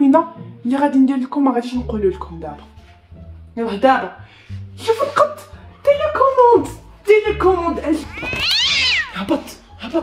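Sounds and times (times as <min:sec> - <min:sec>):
cat meowing: 0:08.1 - 0:09.2.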